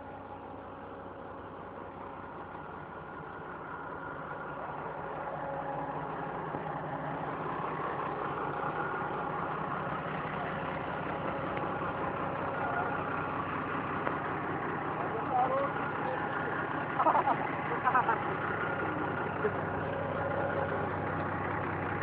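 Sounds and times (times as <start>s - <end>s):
tractor diesel engine running: 0.0s - 22.0s.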